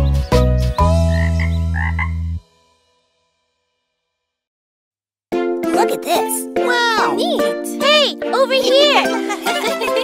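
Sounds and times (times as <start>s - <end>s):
cartoon frog croaks: 1.1s - 2.2s
children's song chords: 5.3s - 10.0s.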